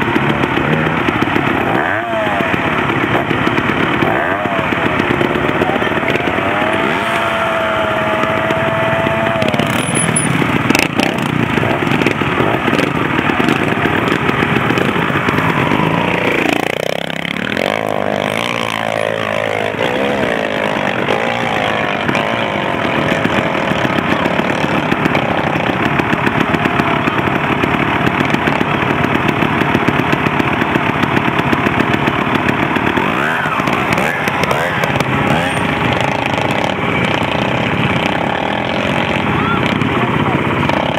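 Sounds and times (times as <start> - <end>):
motorcycle engine revving: 0.0 - 40.9.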